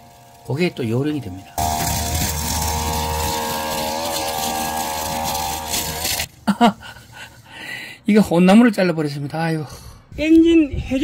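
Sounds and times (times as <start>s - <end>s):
brush cutter cutting grass: 0.0s - 6.3s.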